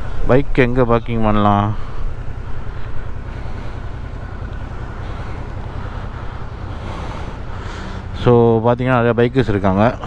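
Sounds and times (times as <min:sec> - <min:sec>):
motorcycle engine rumble: 0:00.0 - 0:10.0.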